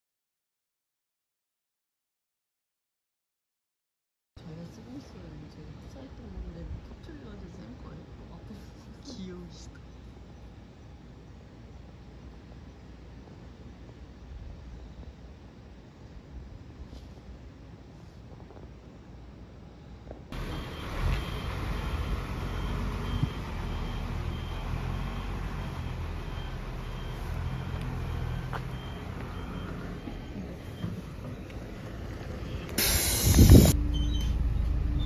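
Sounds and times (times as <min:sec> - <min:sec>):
bus engine idling: 0:20.3 - 0:35.0
faint electronic beeps: 0:20.4 - 0:31.6
loud burst of hiss: 0:32.8 - 0:33.8.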